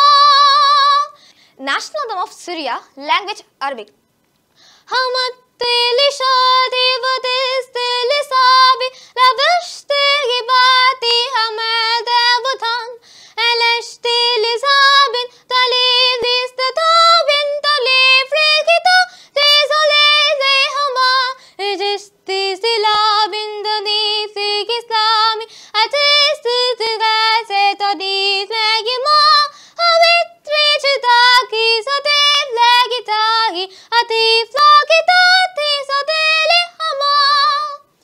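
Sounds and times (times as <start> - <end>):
girl singing unaccompanied: 0.0 - 4.0, 4.6 - 38.0.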